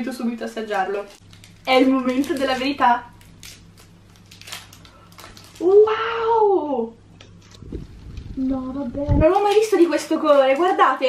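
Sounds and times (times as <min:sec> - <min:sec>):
candy wrapper crinkling: 0:00.4 - 0:05.9.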